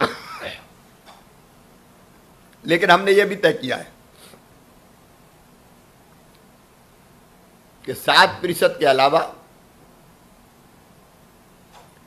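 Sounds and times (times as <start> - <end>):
man coughing into handkerchief: 0.0 - 0.7.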